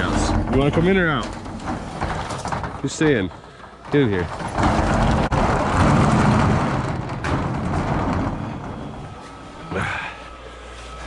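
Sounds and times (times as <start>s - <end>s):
blower fan humming and whining: 0.0s - 11.0s.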